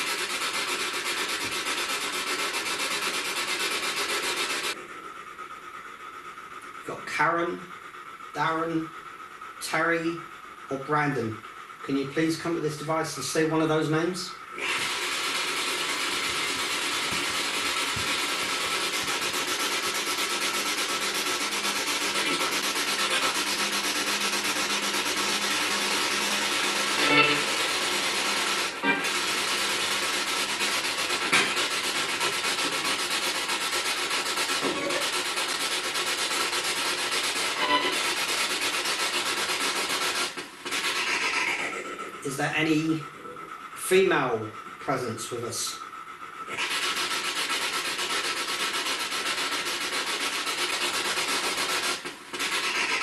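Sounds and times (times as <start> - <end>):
radio static hiss: 11.9 - 33.2, 34.4 - 45.5
snatches of radio sound: 27.0 - 27.6.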